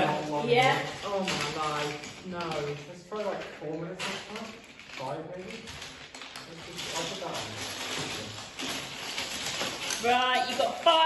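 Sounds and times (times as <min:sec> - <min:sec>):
plastic bricks clattering: 0:00.0 - 0:11.0.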